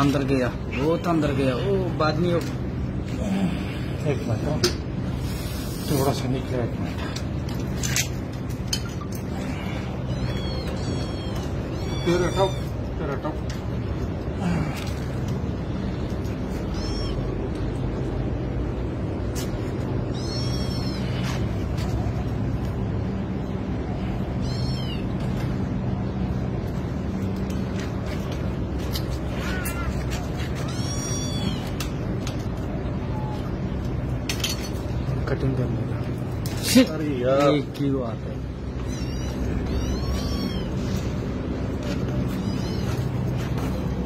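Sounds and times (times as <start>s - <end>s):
steady low hum: 0.0s - 44.0s
kitten mewing: 8.8s - 13.0s, 16.5s - 17.4s, 19.4s - 21.5s, 24.3s - 25.4s, 29.2s - 32.1s, 38.6s - 43.9s.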